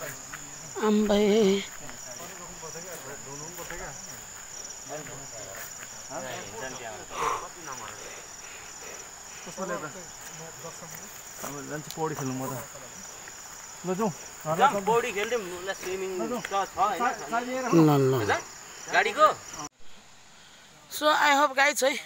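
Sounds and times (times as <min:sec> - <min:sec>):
voices talking: 0:00.0 - 0:19.7
insects chirring: 0:00.0 - 0:22.0.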